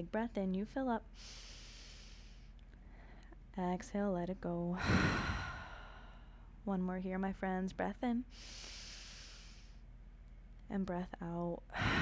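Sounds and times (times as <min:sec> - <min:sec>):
woman inhaling deeply: 0:01.2 - 0:03.3, 0:04.8 - 0:06.5, 0:08.3 - 0:09.8, 0:11.8 - 0:12.0.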